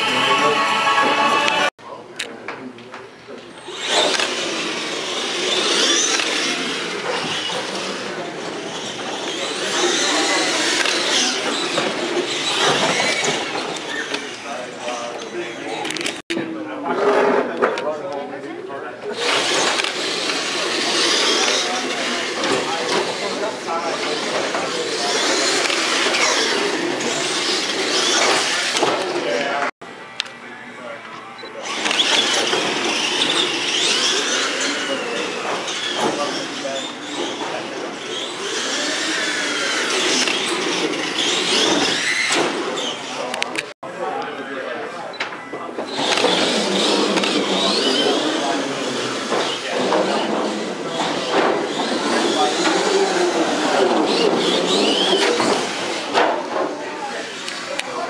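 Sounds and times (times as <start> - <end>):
electric toy motors whining: 0.0 - 1.7, 3.6 - 16.2, 19.1 - 29.5, 31.6 - 43.6, 45.9 - 58.0
voices chattering in a hall: 0.0 - 58.0.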